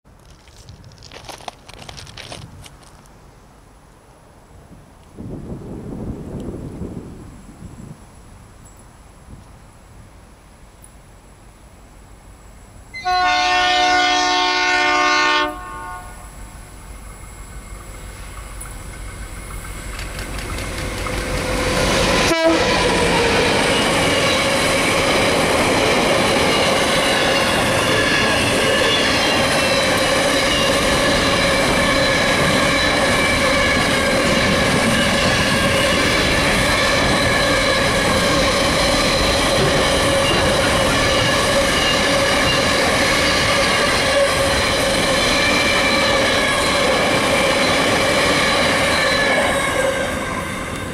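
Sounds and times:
diesel locomotive engine: 0:08.6 - 0:50.9
wheels squealing on rail: 0:12.9 - 0:50.9.

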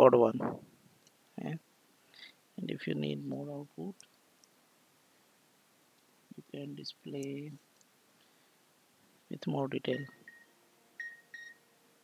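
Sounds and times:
computer clicks with high ring: 0:09.9 - 0:11.6.

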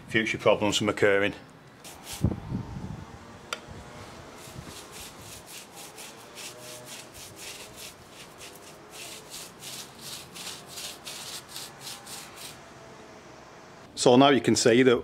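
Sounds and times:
brush scrubbing on rough wall: 0:01.8 - 0:02.4, 0:04.1 - 0:12.7.

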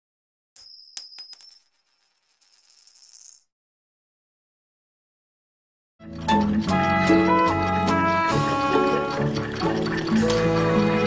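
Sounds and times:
coin rattling as it spins: 0:00.6 - 0:03.5
metal coin dropping and bouncing: 0:00.6 - 0:03.5.

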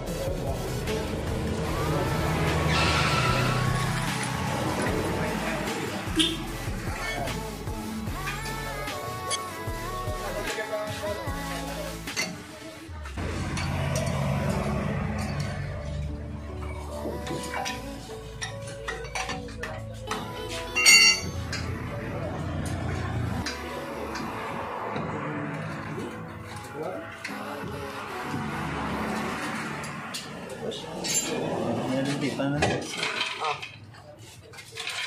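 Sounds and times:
lug wrench clinking: 0:20.8 - 0:21.7.

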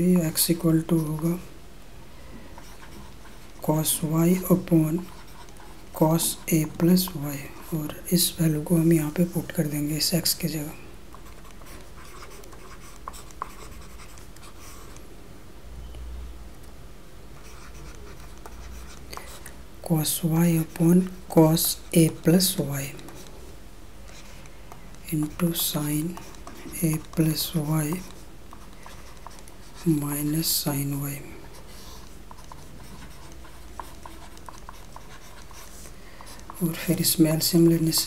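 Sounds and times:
person speaking: 0:00.0 - 0:01.6, 0:02.5 - 0:15.0, 0:17.4 - 0:23.5, 0:24.1 - 0:38.0
steady low hum: 0:00.0 - 0:38.0
stylus scratching and tapping: 0:00.1 - 0:01.5, 0:02.6 - 0:15.1, 0:17.4 - 0:38.0.

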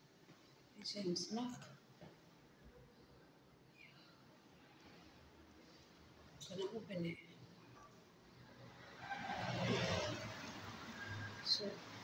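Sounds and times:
vehicle passing: 0:08.4 - 0:12.0.

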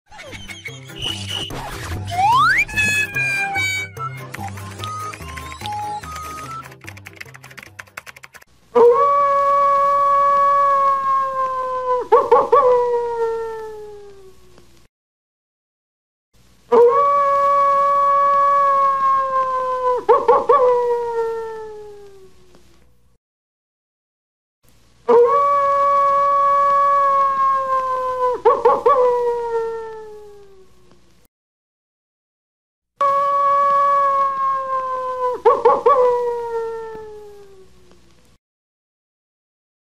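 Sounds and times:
music jingle with clicks: 0:01.0 - 0:07.0
coyote howling and yipping: 0:08.8 - 0:14.0, 0:16.7 - 0:22.1, 0:25.1 - 0:30.3, 0:33.0 - 0:37.5
coyote howling: 0:25.1 - 0:30.3, 0:33.0 - 0:37.5.

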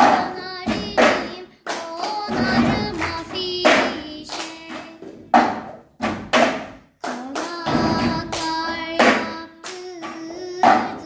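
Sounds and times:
folk song with singing: 0:00.0 - 0:05.6, 0:07.0 - 0:11.0
hands clapping: 0:00.0 - 0:05.6, 0:06.4 - 0:11.0
plastic cups knocked on desks: 0:05.0 - 0:06.9.

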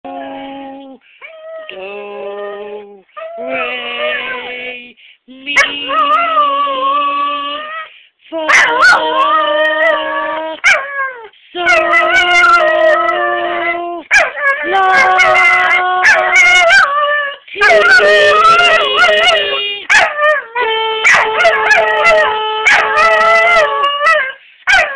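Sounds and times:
dog howling: 0:08.5 - 0:24.9
person singing scale notes: 0:11.6 - 0:16.4, 0:17.5 - 0:19.9.

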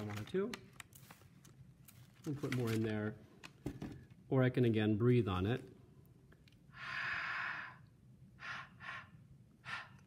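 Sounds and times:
person exhaling: 0:06.7 - 0:10.0.

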